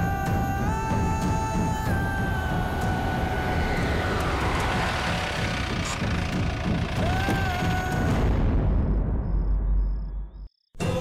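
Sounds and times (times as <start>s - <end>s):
background music drone: 0.0s - 8.6s
rush of noise: 1.8s - 8.4s
vehicle engine running low: 1.9s - 8.2s.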